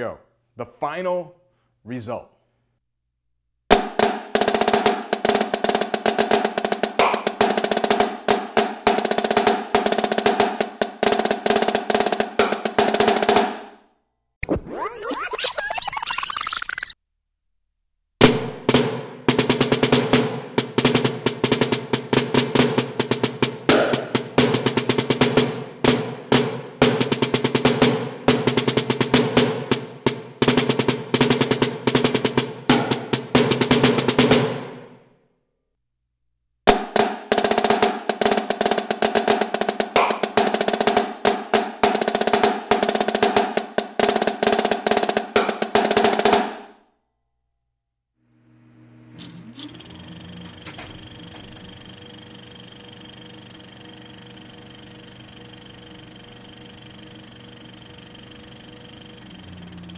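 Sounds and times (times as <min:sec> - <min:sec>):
marching snare drum solo: 0:03.7 - 0:13.7, 0:18.2 - 0:34.8, 0:36.7 - 0:46.7.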